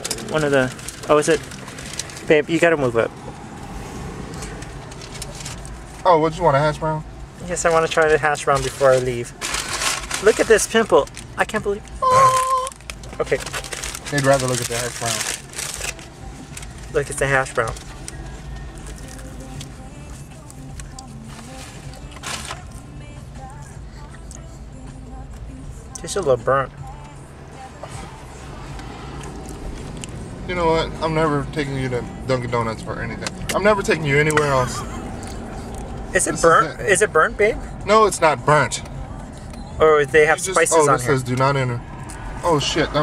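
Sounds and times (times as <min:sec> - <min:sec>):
car engine rumbling inside cabin: 0:00.0 - 0:43.0
faint music: 0:00.0 - 0:43.0.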